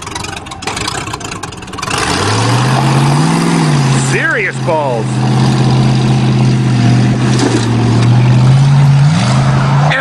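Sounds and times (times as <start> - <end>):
car engine at high revs: 0.0 - 10.0.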